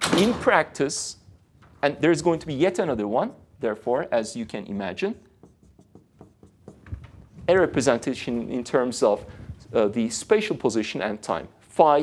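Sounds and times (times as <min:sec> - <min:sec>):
marker scratching on whiteboard: 0:02.9 - 0:08.4.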